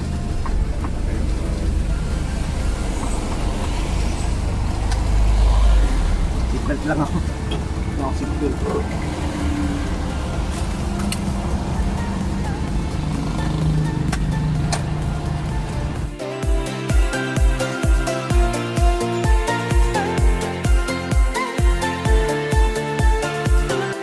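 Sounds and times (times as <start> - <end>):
tyres on wet road: 0.0 - 16.2
vehicle engine rumble in cabin: 0.0 - 16.2.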